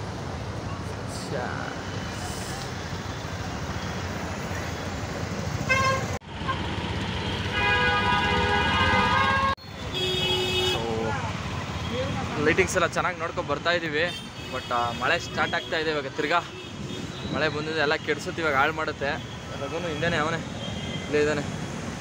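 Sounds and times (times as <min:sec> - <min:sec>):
traffic rumble: 0:00.0 - 0:22.0
wind: 0:00.0 - 0:22.0
vehicle horns honking: 0:05.7 - 0:11.0, 0:14.1 - 0:18.1, 0:19.2 - 0:21.3.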